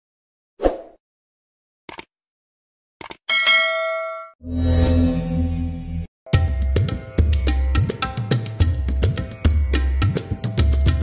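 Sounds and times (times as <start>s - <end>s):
notification bell ding: 3.3s - 4.4s.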